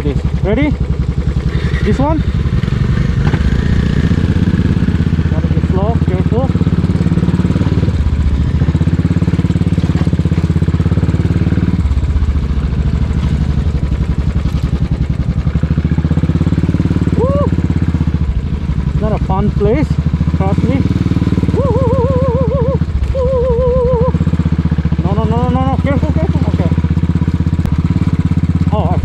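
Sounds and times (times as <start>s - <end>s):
motorcycle engine running: 0.0s - 29.0s.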